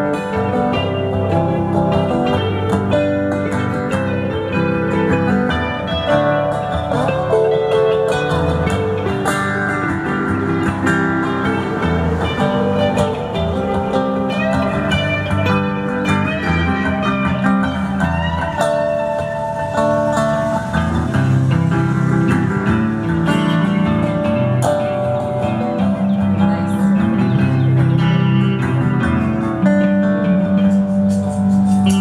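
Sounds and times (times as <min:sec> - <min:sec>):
acoustic guitar playing: 0:00.0 - 0:32.0
electric guitar playing: 0:00.0 - 0:32.0.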